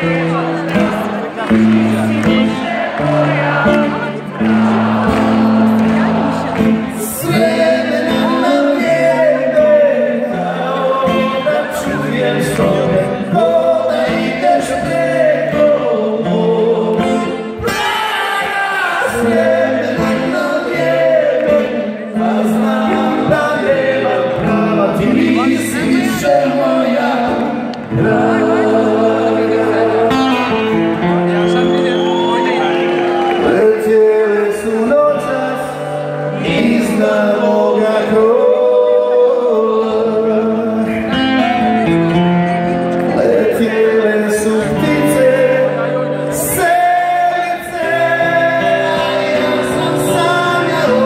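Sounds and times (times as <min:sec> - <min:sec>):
electric guitars: 0:00.0 - 0:51.0
live rock band with singing: 0:00.0 - 0:51.0.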